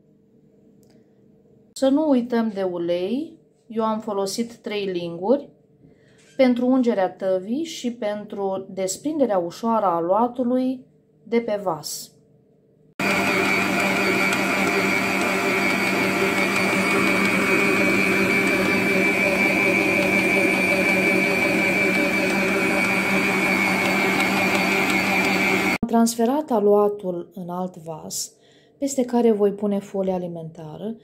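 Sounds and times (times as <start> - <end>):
stand mixer motor running: 13.0 - 25.8.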